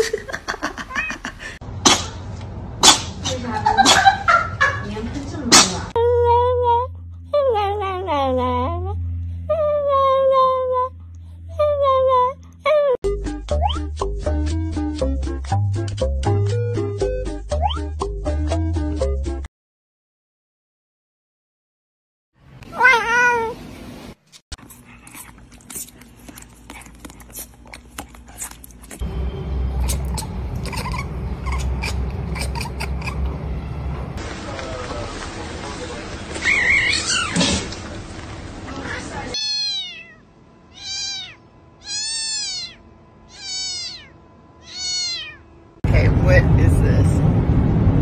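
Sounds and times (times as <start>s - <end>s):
low rumble: 4.6s - 12.8s, 29.0s - 34.4s, 45.8s - 48.0s
cat meowing: 22.7s - 23.6s, 39.4s - 45.5s
cat clicking and chirping: 29.8s - 33.3s
small dog whining: 29.8s - 33.3s, 36.4s - 37.5s, 39.4s - 45.4s.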